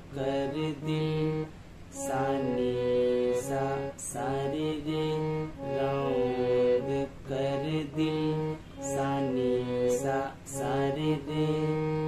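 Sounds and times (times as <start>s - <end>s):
harmonium melody over drone: 0.1s - 12.0s.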